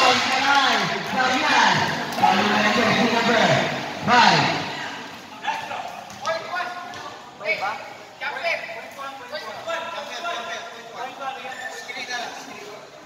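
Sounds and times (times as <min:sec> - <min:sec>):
people talking and calling out: 0:00.0 - 0:13.0.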